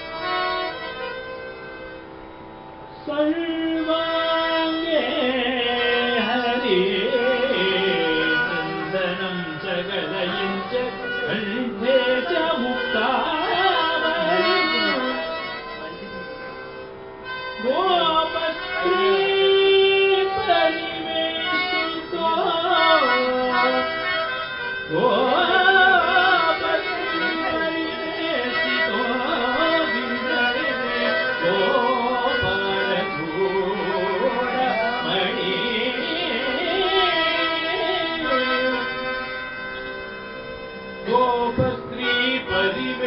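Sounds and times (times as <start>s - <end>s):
harmonium chord: 0.0s - 43.0s
devotional singing: 3.1s - 15.3s, 17.6s - 39.1s, 41.0s - 43.0s.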